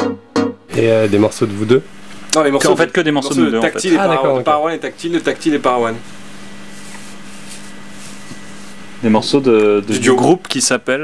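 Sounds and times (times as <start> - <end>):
low electrical hum: 0.7 - 11.0.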